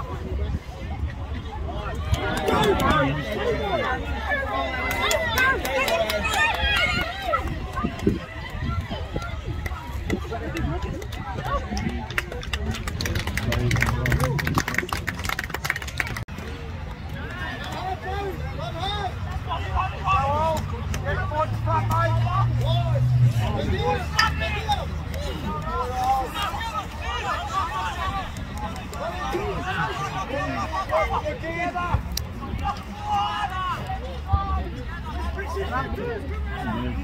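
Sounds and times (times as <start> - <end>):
voices calling and shouting: 0.0 - 37.0
passing vehicle engine hum: 19.1 - 27.2.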